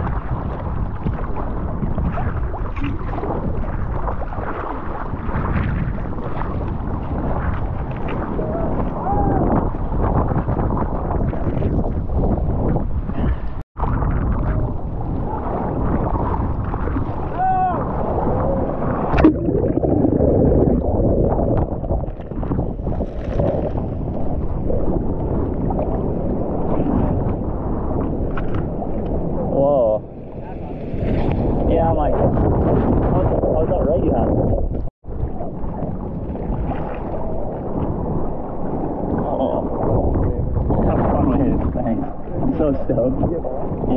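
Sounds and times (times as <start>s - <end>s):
water sloshing and splashing: 0.0s - 29.4s, 30.2s - 33.4s, 34.5s - 43.9s
wind on microphone: 0.0s - 43.9s.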